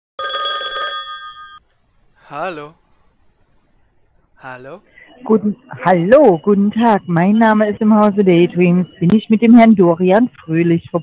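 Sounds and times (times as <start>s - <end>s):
telephone bell ringing: 0.2s - 1.6s.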